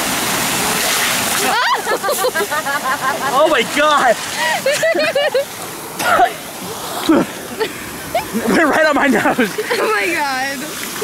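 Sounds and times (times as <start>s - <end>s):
fountain water jets spraying: 0.0s - 11.0s.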